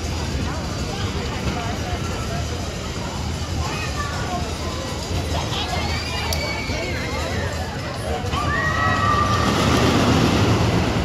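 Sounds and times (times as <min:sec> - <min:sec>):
ride machinery rumbling: 0:00.0 - 0:11.0.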